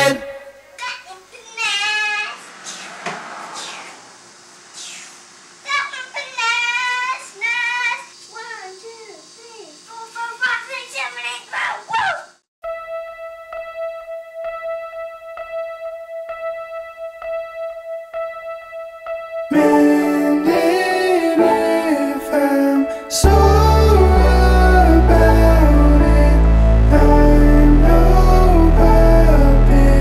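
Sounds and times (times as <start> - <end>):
music with singing: 0.0 - 0.7, 19.5 - 30.0
child speaking and singing: 0.7 - 2.4, 5.6 - 12.3
steady held tone: 12.6 - 30.0.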